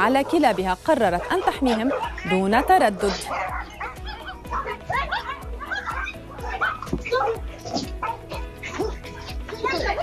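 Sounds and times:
background music with low beat: 0.0s - 10.0s
small dogs barking and yelping: 0.0s - 10.0s.

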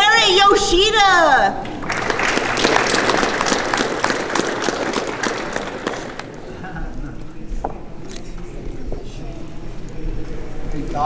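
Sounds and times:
audience applauding: 1.6s - 6.7s.

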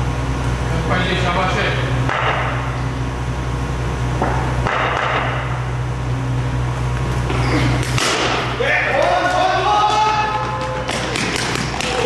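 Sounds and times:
indoor hall hum: 0.0s - 12.0s.

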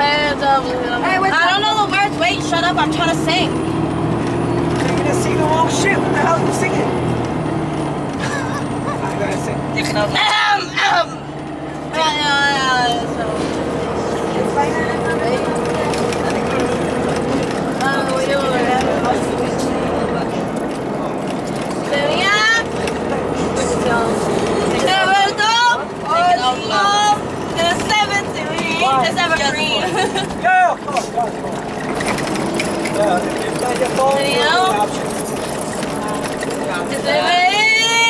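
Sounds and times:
bus engine and road noise: 0.0s - 38.0s
passengers' high gliding voices: 8.2s - 38.0s.

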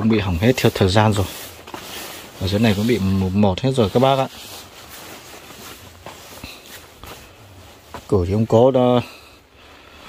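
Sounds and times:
soft footsteps on dirt: 0.0s - 9.3s.

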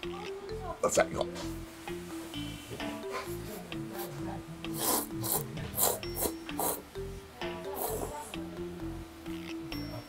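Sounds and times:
person slurping noodles: 4.7s - 6.8s.

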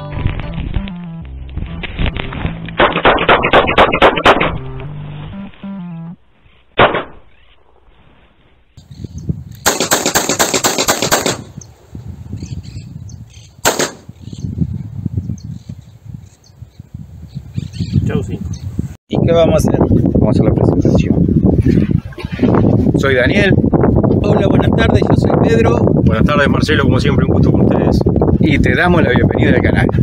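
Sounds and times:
background music: 0.0s - 2.8s, 4.1s - 6.2s
sharp cracks: 2.6s - 4.9s, 6.7s - 8.0s, 9.6s - 11.6s, 13.6s - 14.1s
pistol shots: 2.8s - 4.6s, 6.8s - 7.3s, 9.6s - 11.6s, 13.6s - 14.1s.

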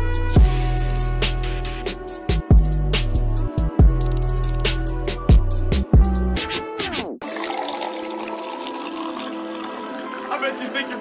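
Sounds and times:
filtered phonk music: 0.0s - 7.2s.

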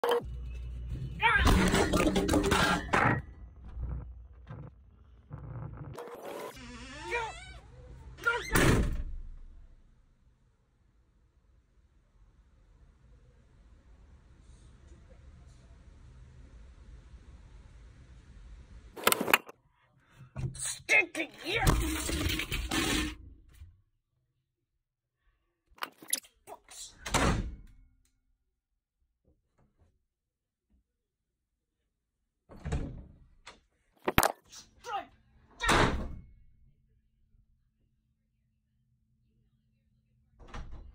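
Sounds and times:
interior door slamming: 8.4s - 9.4s.

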